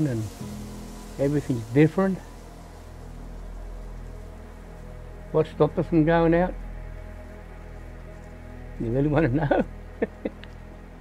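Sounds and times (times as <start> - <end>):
soft droning background music: 0.0 - 11.0.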